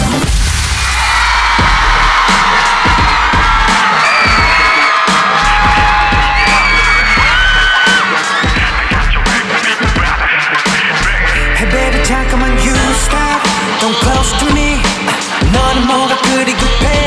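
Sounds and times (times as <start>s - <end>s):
electronic dance music: 0.0s - 17.0s
crowd screaming: 0.5s - 17.0s.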